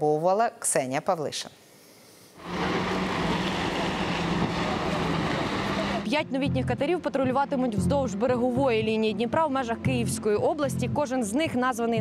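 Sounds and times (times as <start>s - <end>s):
motorboat engine running: 2.4s - 10.0s.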